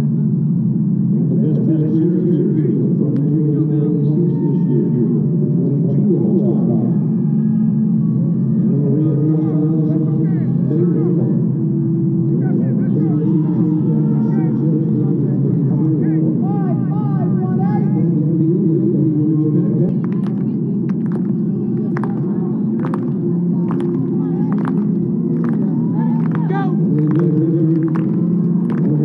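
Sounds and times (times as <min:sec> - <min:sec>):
crowd murmur: 0:00.0 - 0:29.0.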